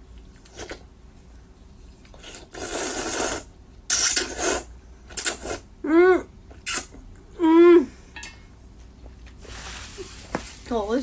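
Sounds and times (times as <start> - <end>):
person slurping noodles: 2.1 - 5.7, 6.6 - 6.9
person humming while chewing: 5.8 - 8.0.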